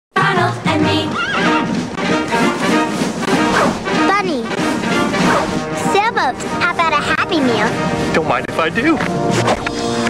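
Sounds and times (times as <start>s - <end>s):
commercial music: 0.2s - 10.0s
horse whinnying: 1.1s - 1.7s.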